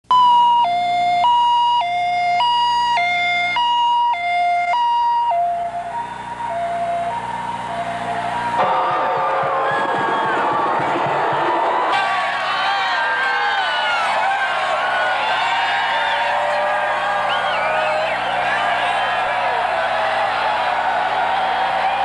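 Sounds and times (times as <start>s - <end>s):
two-tone hi-lo siren: 0.0s - 10.8s
crowd cheering and shouting: 5.6s - 22.0s.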